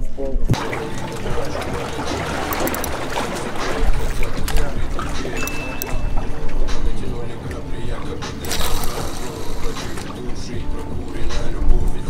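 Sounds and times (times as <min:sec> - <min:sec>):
background voices: 0:00.5 - 0:12.0
seawater lapping against wooden pier: 0:00.6 - 0:12.0.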